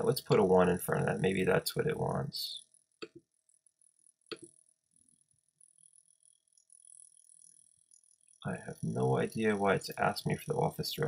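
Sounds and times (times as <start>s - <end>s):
soft clicks: 3.0s - 3.3s, 4.3s - 4.6s.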